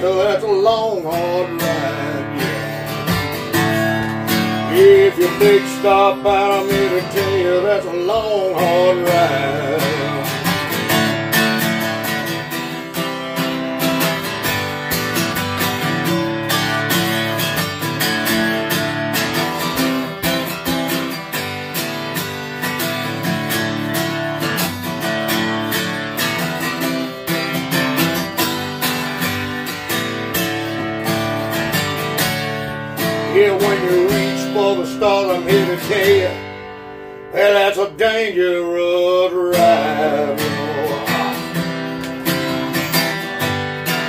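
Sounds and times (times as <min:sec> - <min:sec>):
acoustic guitar strumming: 0:00.0 - 0:44.0.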